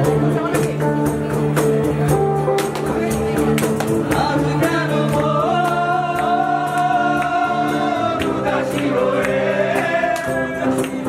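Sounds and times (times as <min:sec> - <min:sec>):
acoustic guitars: 0:00.0 - 0:11.0
steady percussive beat: 0:00.0 - 0:11.0
group singing: 0:03.9 - 0:11.0.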